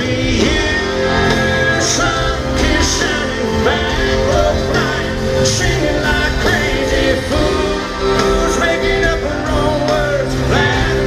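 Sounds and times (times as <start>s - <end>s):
guitars: 0.0s - 11.0s
live country band playing: 0.0s - 11.0s
person singing: 0.0s - 11.0s.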